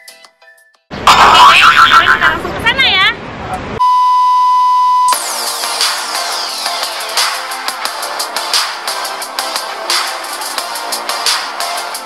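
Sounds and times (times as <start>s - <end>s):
loud excited voice: 1.0s - 3.0s
steady high beep: 3.8s - 5.2s
electronic music: 5.1s - 12.0s.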